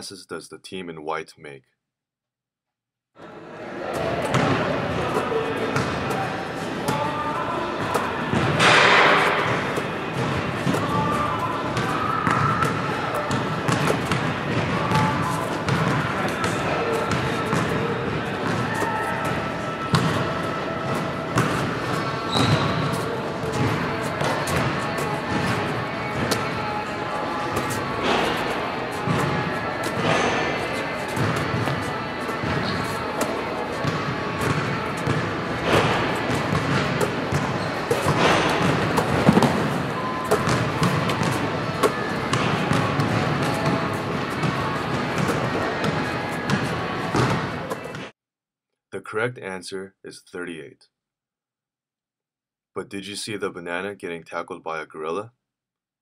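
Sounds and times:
background music: 3.2 - 48.1
basketballs bouncing: 3.8 - 48.1.

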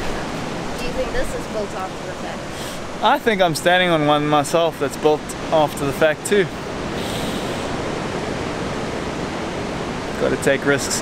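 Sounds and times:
ocean surf breaking: 0.0 - 11.0.

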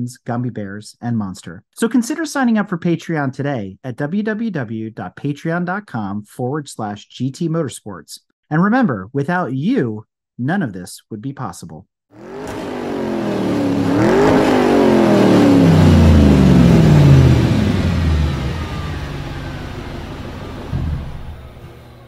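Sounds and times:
car driving past: 12.2 - 22.0.

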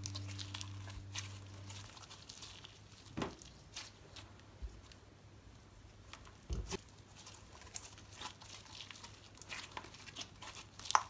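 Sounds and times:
slime squishing: 0.0 - 5.0, 6.0 - 11.0.

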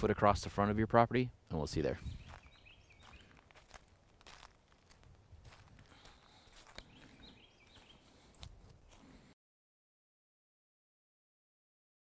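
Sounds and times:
birds chirping: 1.5 - 3.6, 5.8 - 9.3
footsteps on grass and sand: 1.8 - 9.3.

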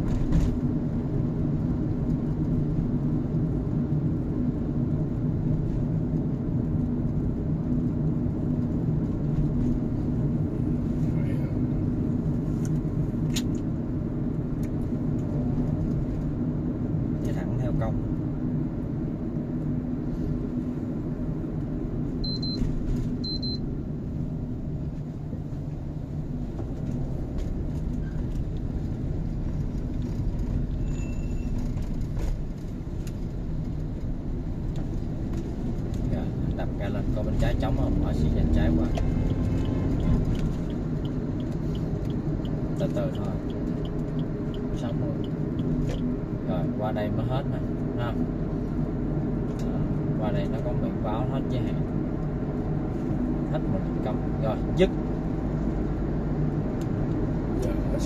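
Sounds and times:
road and engine rumble in car: 0.0 - 58.0.

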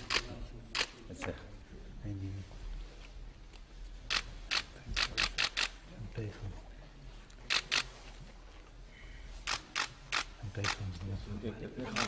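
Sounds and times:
camera shutters clicking: 0.0 - 1.0, 4.1 - 5.8, 7.5 - 7.9, 9.4 - 10.8.

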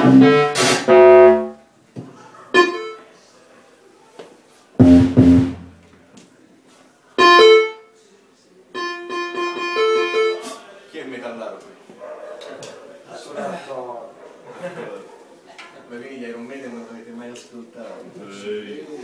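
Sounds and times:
synthesized keyboard chords: 0.0 - 1.6, 2.6 - 3.0, 4.8 - 5.8, 7.2 - 7.8.

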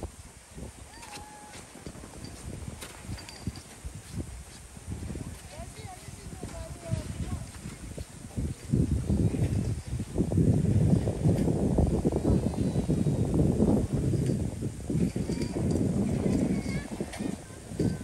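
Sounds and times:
footsteps crunching on snow: 1.0 - 8.8.

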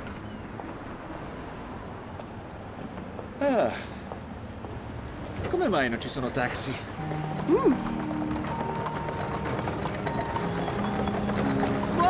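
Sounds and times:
horse hooves clip-clopping on pavement: 0.0 - 3.4, 4.0 - 12.0
background music with held notes: 7.0 - 12.0.

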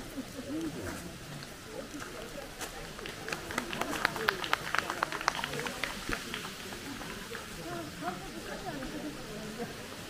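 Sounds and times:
people talking faintly: 0.0 - 10.0.

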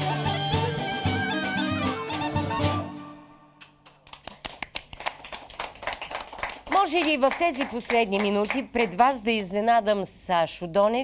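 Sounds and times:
folk band tune: 0.0 - 3.8
hands clapping: 3.6 - 9.0.

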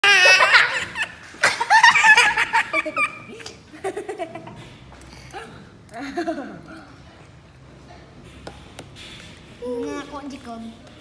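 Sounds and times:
toddler laughing: 0.0 - 4.5.

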